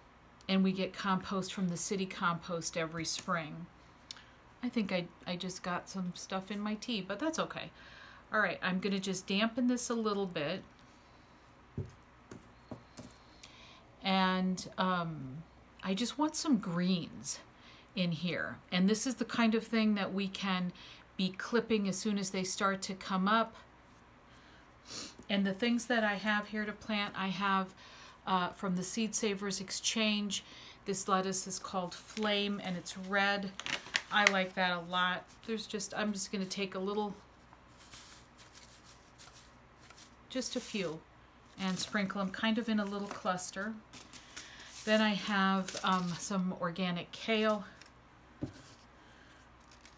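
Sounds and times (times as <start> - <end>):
paper seed packet rustling: 31.6 - 36.3, 37.7 - 46.4, 47.4 - 49.9.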